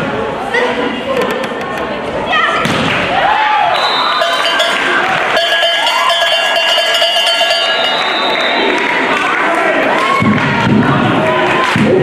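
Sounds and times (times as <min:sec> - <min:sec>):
cowbell ringing: 0:04.2 - 0:08.2.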